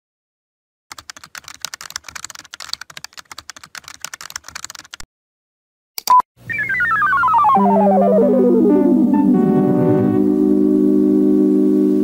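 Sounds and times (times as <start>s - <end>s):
rapid keyboard typing: 0.9s - 5.0s.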